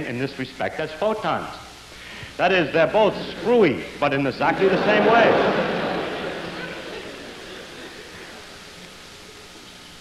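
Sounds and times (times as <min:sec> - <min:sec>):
recording hiss: 0:00.0 - 0:10.0
audience laughter: 0:02.8 - 0:08.9.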